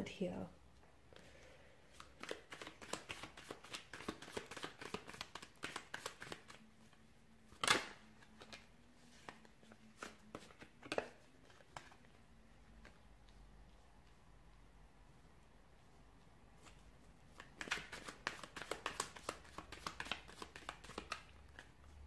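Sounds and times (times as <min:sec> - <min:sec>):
cards shuffling: 0:01.9 - 0:13.8, 0:16.6 - 0:21.8
cards slapping: 0:02.0 - 0:06.6, 0:07.5 - 0:12.0, 0:17.3 - 0:21.7.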